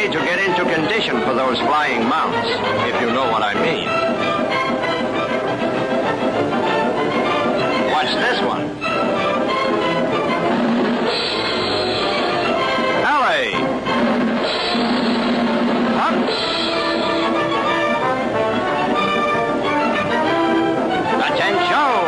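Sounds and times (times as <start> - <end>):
brass and drums band music: 0.0 - 22.0.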